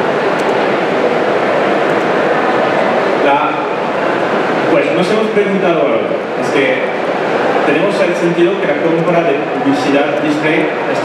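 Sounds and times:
trade show hall din: 0.0s - 11.0s.

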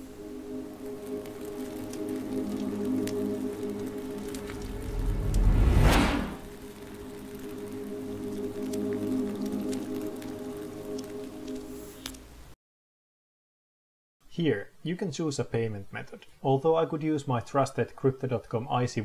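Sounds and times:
low drone: 0.0s - 12.2s
deep whooshing swell: 0.2s - 11.2s.

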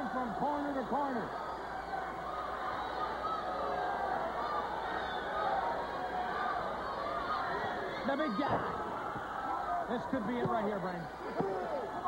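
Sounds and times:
arena crowd shouting and cheering: 0.0s - 12.0s.

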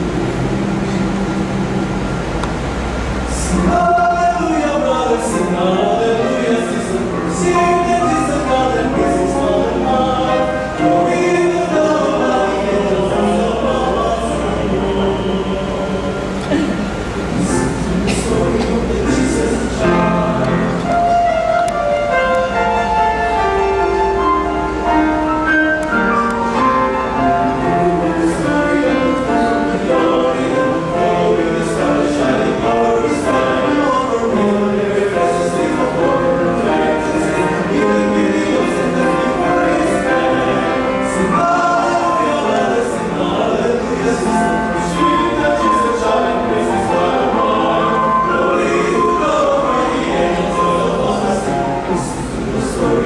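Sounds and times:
male choir singing: 3.3s - 23.0s, 25.8s - 53.0s.

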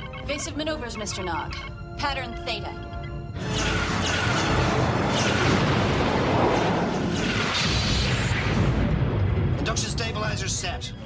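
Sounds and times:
orchestral battle music: 3.3s - 10.7s
phaser fire: 3.4s - 9.8s
explosions rumbling: 3.8s - 10.4s.

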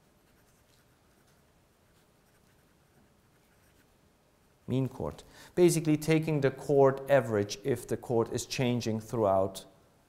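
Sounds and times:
pen scratching on paper: 0.1s - 3.9s.

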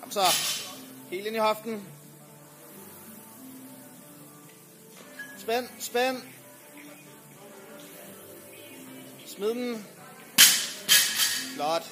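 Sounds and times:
background music: 0.0s - 11.9s.

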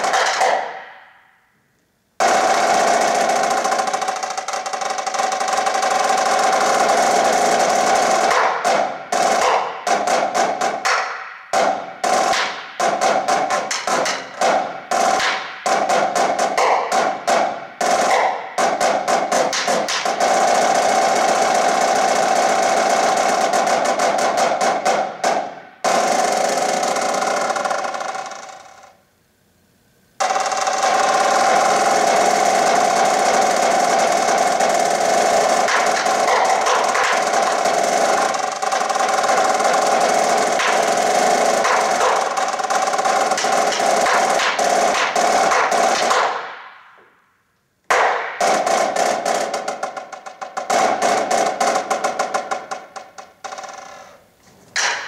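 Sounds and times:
snare drum strokes and rolls: 0.0s - 0.9s, 2.2s - 29.0s, 30.2s - 46.8s, 47.9s - 54.2s, 54.8s - 55.0s.

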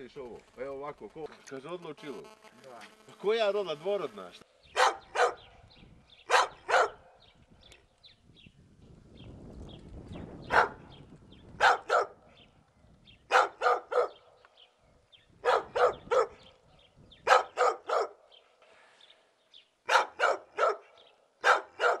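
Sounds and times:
dog barking: 4.8s - 5.5s, 6.3s - 7.0s, 10.5s - 10.8s, 11.6s - 12.2s, 13.3s - 14.2s, 15.4s - 16.4s, 17.2s - 18.2s, 19.9s - 22.0s.

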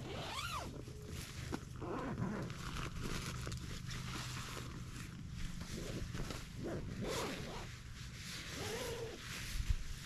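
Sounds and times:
tent fabric rustling: 0.0s - 10.0s.

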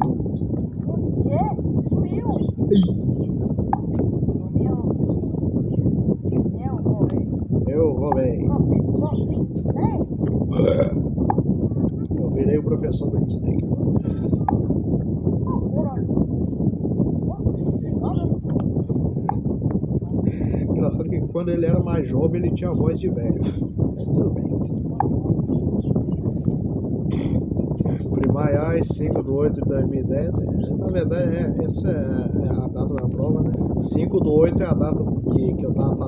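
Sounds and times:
steady low rumble: 0.0s - 36.0s
high-pitched cartoon voice: 2.1s - 3.0s.

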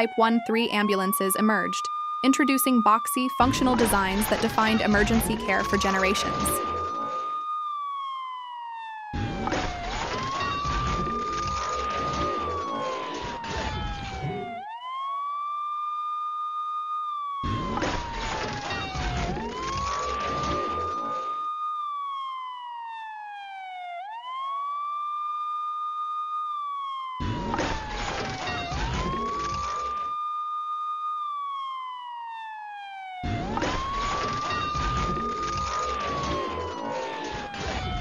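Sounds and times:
emergency siren wailing: 0.0s - 38.0s.

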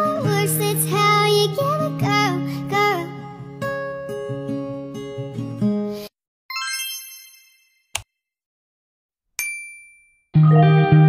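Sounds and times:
bright high chime: 6.5s - 7.9s.

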